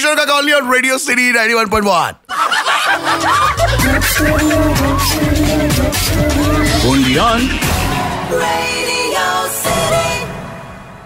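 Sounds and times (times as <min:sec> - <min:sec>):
recorded laughter: 0:02.3 - 0:05.7
jingle music: 0:02.9 - 0:10.0
deep bass beat: 0:03.6 - 0:08.1.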